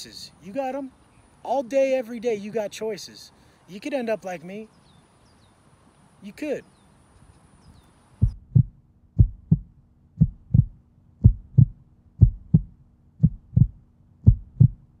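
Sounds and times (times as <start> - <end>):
heartbeat thumps: 8.2 - 14.9.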